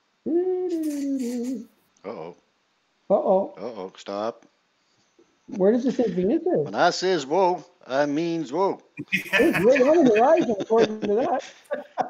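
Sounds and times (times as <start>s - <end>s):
man saying whoa: 0.7s - 2.2s, 9.0s - 10.5s.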